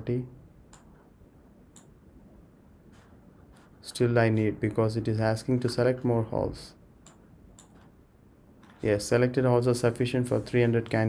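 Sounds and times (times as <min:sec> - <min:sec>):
low room hum: 0:00.0 - 0:11.0
faint computer mouse clicks: 0:07.0 - 0:07.9.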